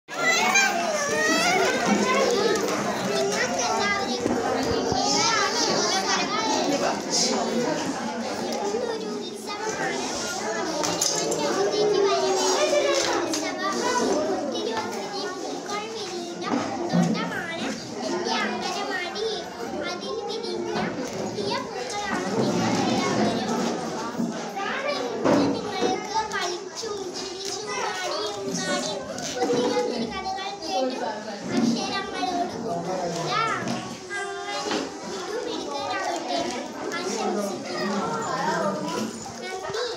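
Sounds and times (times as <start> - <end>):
children's voices in background: 0.0 - 39.9
girl speaking: 0.2 - 39.9.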